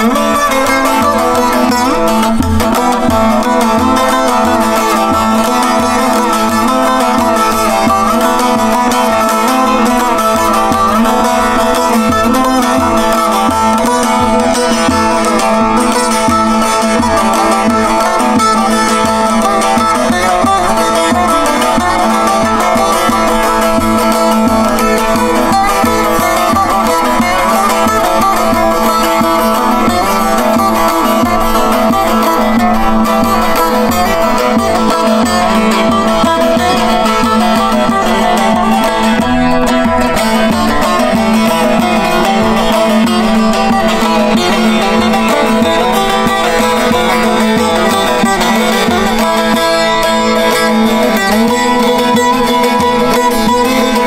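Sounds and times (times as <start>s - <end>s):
plucked long-necked lute melody: 0.0s - 54.0s.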